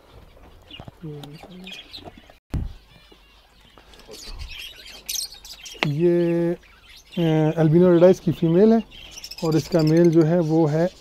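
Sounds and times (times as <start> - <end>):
lovebirds chirping: 0.0 - 11.0.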